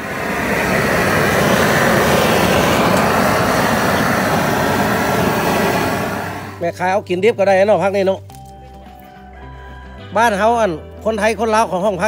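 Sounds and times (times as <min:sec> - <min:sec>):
loud steady rushing noise: 0:00.0 - 0:06.9.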